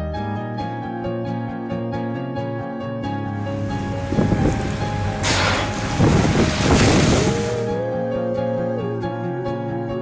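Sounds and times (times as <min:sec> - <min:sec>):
background music: 0:00.0 - 0:10.0
water rushing and splashing: 0:03.4 - 0:07.9
wind buffeting microphone: 0:03.6 - 0:07.7.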